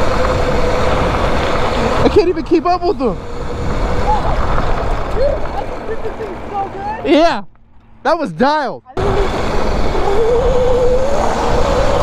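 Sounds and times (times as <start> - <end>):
wind noise: 0.0 - 7.4, 8.8 - 12.0
tyres on asphalt: 0.0 - 12.0.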